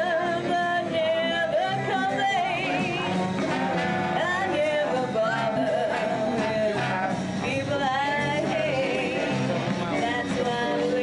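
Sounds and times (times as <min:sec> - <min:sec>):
big band swing music: 0:00.0 - 0:11.0.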